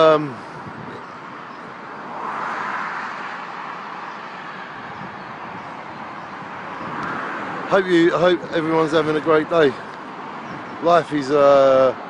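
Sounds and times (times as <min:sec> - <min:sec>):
road traffic rushing: 0:00.0 - 0:12.0
vehicle passing: 0:00.0 - 0:12.0.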